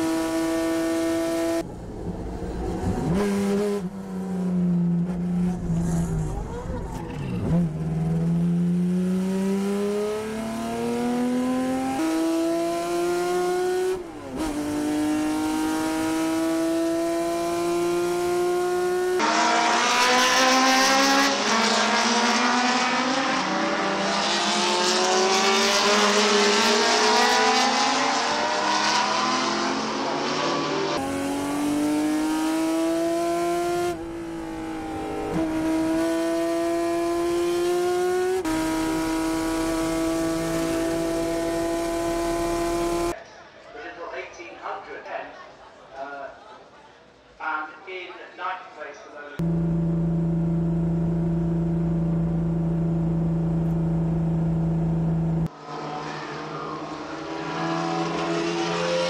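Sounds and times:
race car engine from cockpit: 0:00.0 - 0:43.2, 0:49.4 - 0:59.0
race cars passing: 0:00.1 - 0:43.1, 0:49.4 - 0:59.0.

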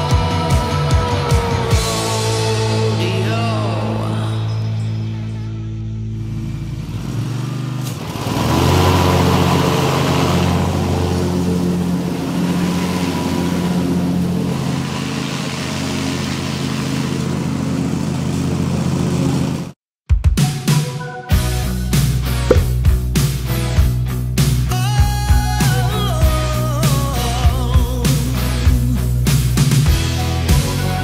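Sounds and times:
riding lawn tractor engine running: 0:06.2 - 0:19.8.

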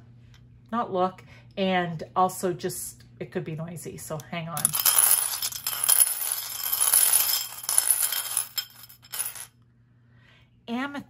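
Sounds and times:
crystals clinking in glass bowl: 0:04.6 - 0:09.5.

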